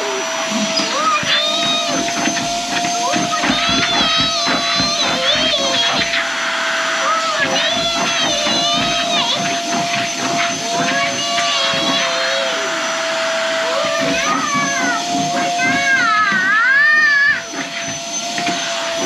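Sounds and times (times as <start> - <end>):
child vocalizing playfully: 13.7 - 17.4.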